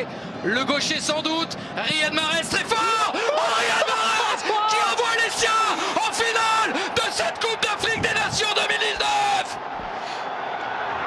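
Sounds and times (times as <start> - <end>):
stadium crowd cheering: 1.8 - 11.0
commentator yelling: 1.9 - 9.6.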